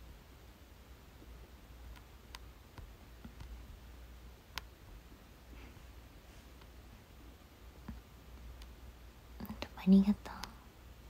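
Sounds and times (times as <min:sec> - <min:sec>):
steady low hum: 0:00.0 - 0:11.0
woman speaking softly: 0:09.4 - 0:10.7.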